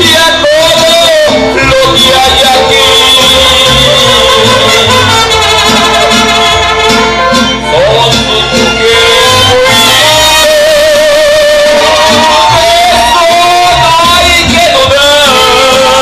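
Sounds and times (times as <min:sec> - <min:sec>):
man singing with vibrato: 0:00.0 - 0:16.0
mariachi band playing: 0:00.0 - 0:16.0.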